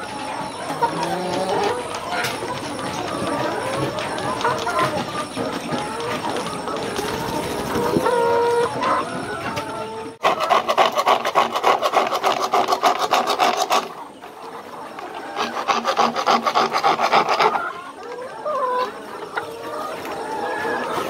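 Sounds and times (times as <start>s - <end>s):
hand tool rasping on plastic pipe: 10.2s - 13.9s, 15.4s - 17.6s.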